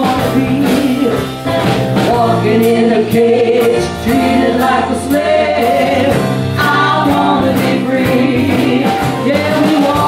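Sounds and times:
bass guitar: 0.0 - 10.0
drums with cymbal strokes: 0.0 - 10.0
guitar: 0.0 - 10.0
woman singing lead: 0.0 - 10.0.

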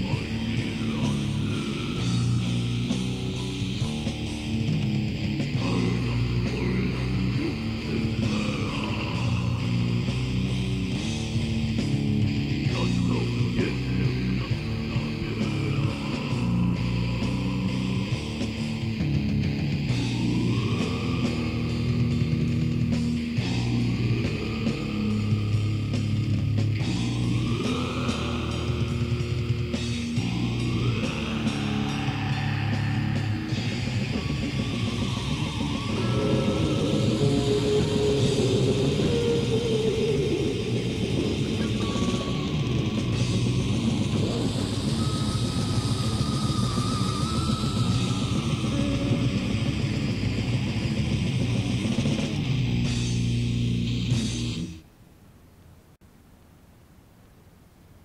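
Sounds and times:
metal band with distorted guitars: 0.0 - 54.8
faint tape hiss: 48.7 - 58.0.

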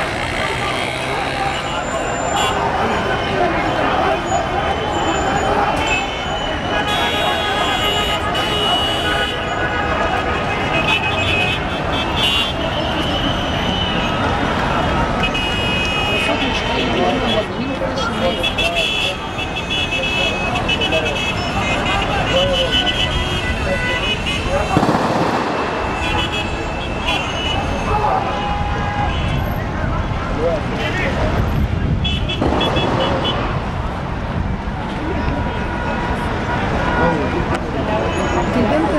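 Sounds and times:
car horns tooting: 0.0 - 29.7, 30.7 - 33.7
many voices: 0.0 - 38.9
traffic running: 0.0 - 38.9.

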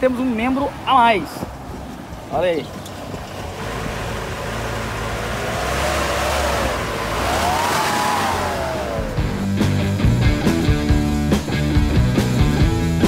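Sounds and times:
car engine running: 1.4 - 13.0
whine rising and falling in pitch: 6.0 - 9.4.

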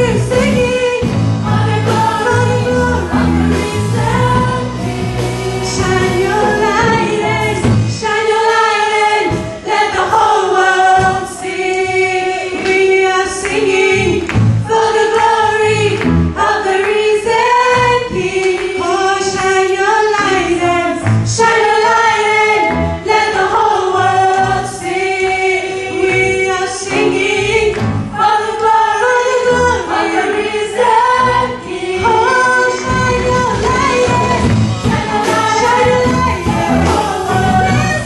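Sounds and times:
backing voices singing: 0.0 - 38.0
drum kit: 0.0 - 38.0
woman singing lead vocal: 0.0 - 38.0.

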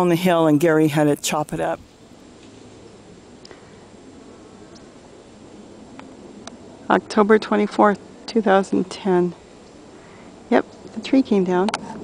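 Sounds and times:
background hiss: 0.0 - 12.0.

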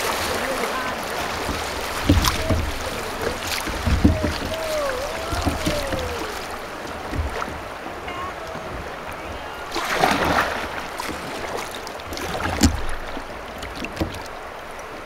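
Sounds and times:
river water rushing and splashing: 0.0 - 15.0
low thumps and knocks: 1.2 - 14.3.

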